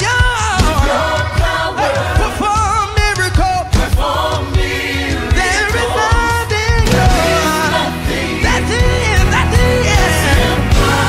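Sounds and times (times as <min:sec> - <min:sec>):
band with strong bass line: 0:00.0 - 0:11.0
gospel choir singing: 0:00.0 - 0:11.0.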